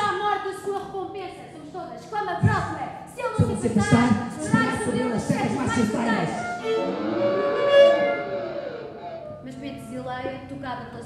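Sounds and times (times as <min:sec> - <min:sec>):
saxophone holding bending note: 0:06.3 - 0:09.4.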